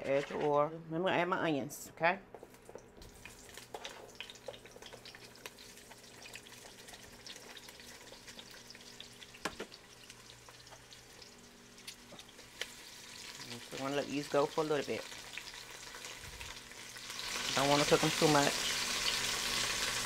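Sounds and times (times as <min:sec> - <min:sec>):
onions sizzling in hot oil: 0:03.0 - 0:20.0.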